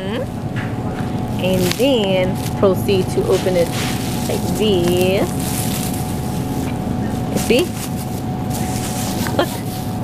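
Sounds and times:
faint constant hum: 0.0s - 10.0s
supermarket background rumble: 0.0s - 10.0s
plastic bag rubbed between fingers: 1.4s - 10.0s.

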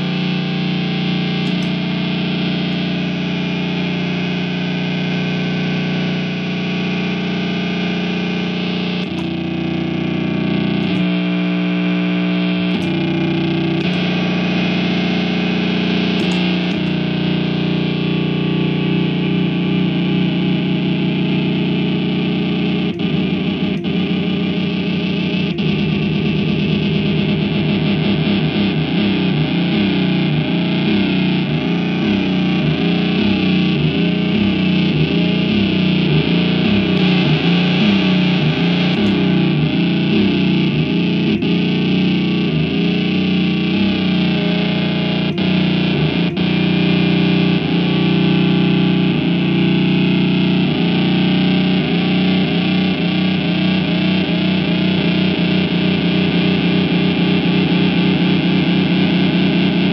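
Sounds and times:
electric guitar feedback drone: 0.0s - 59.9s.

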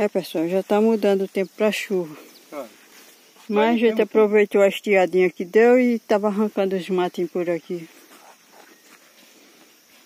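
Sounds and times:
faint insect chirring: 0.0s - 10.0s.

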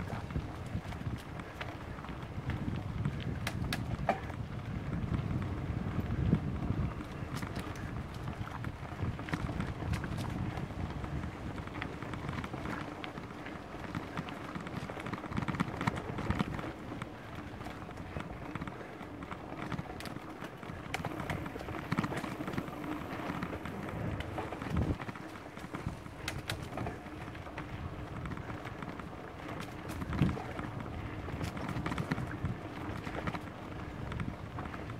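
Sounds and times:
bike rattling on rough trail: 0.0s - 34.9s
wind rumble on microphone: 0.0s - 34.9s.

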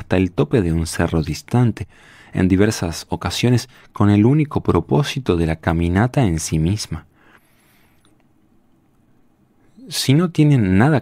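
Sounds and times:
man reading aloud: 0.0s - 7.1s, 9.7s - 11.0s.

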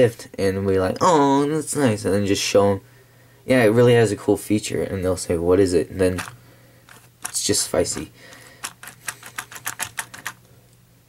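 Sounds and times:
rapid light plastic clicking: 6.1s - 10.8s.

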